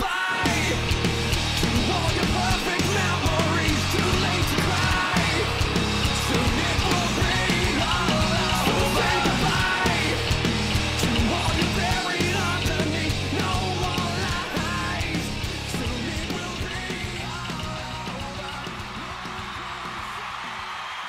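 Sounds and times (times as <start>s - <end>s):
bass guitar: 0.0s - 20.4s
distorted electric guitars: 0.0s - 20.8s
drums: 0.0s - 21.0s.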